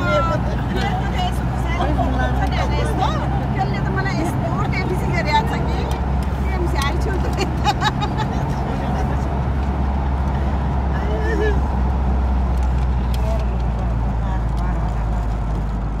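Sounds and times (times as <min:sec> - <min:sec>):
voices: 0:00.0 - 0:15.6
car engine and tyres on road: 0:00.0 - 0:16.0.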